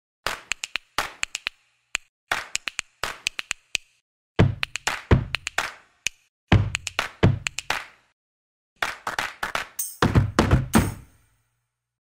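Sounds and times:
percussion clap-like hits: 0:00.2 - 0:03.8, 0:04.4 - 0:08.1, 0:08.8 - 0:11.2
sharp percussion clicks: 0:00.3 - 0:04.0, 0:04.6 - 0:07.8.

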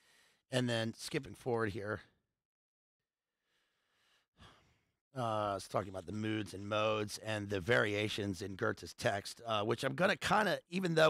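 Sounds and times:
faint breath drawn in: 0:03.4 - 0:05.0.

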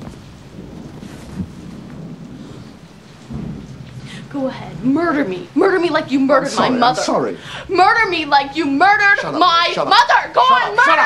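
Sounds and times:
low rumble of thunder: 0:00.0 - 0:09.7
steady rain: 0:00.0 - 0:11.0.

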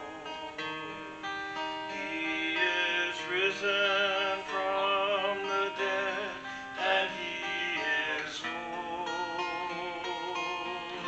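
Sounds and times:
strummed acoustic guitar: 0:00.0 - 0:11.0
man singing: 0:01.6 - 0:11.0.

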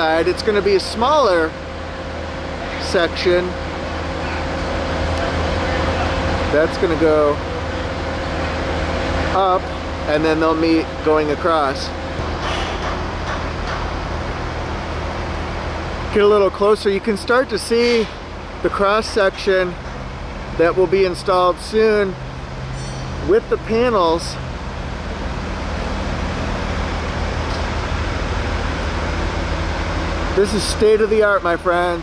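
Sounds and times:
constant hum: 0:00.0 - 0:32.0
engine rumble: 0:00.0 - 0:32.0
outdoor noise: 0:00.0 - 0:32.0.

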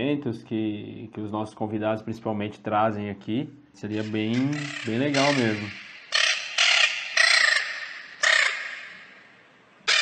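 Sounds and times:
bird cawing: 0:04.0 - 0:10.0.

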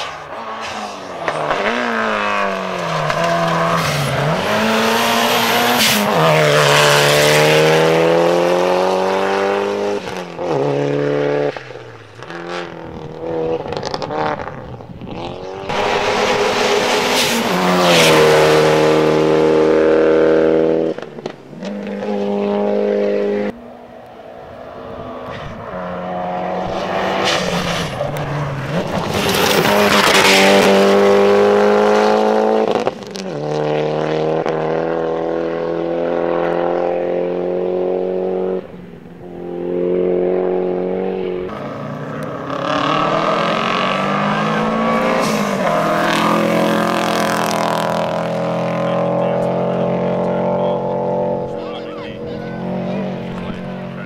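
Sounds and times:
gravel and tyre noise: 0:00.0 - 0:54.0
rally car engines revving: 0:00.0 - 0:54.0.

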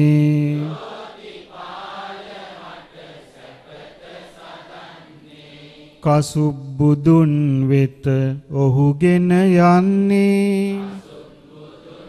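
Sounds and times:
monk chanting: 0:00.0 - 0:00.9, 0:06.0 - 0:12.0
congregation chanting: 0:00.0 - 0:07.4, 0:10.1 - 0:12.0.

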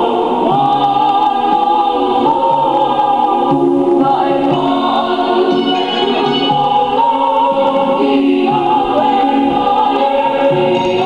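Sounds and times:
choir singing a song of praise: 0:00.0 - 0:11.0.

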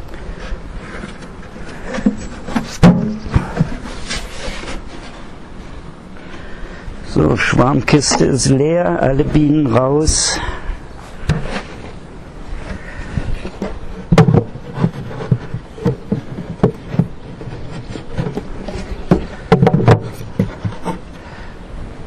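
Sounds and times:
knocks on wooden equipment: 0:14.1 - 0:17.2, 0:17.8 - 0:21.0.

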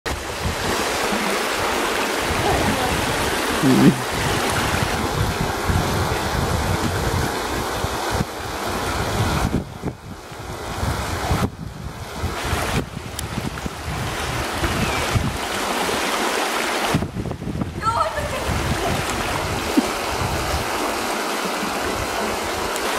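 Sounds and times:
wind buffeting microphone: 0:00.1 - 0:16.0, 0:16.8 - 0:22.9
stream running over stones: 0:00.1 - 0:22.9.

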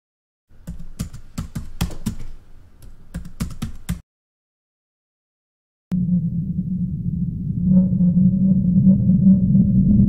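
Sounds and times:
computer keyboard typing: 0:00.6 - 0:04.0.

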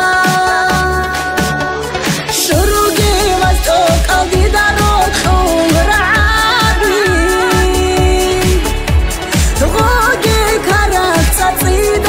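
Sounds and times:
pop song with synthesised backing: 0:00.0 - 0:12.0
deep bass drum: 0:02.5 - 0:12.0.

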